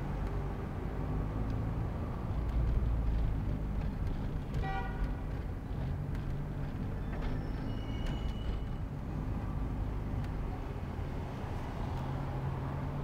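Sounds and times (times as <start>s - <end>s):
city traffic rumble inside car: 0.0s - 13.0s.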